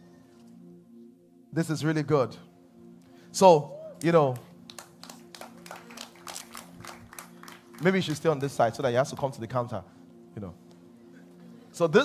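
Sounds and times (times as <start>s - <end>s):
light scattered clapping: 4.0s - 8.8s.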